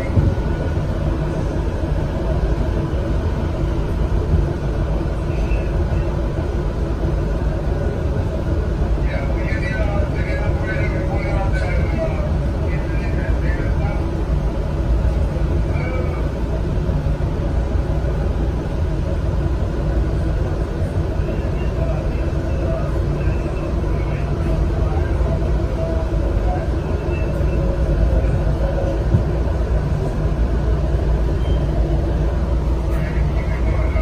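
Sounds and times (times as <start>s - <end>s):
train rumbling on track: 0.0s - 34.0s.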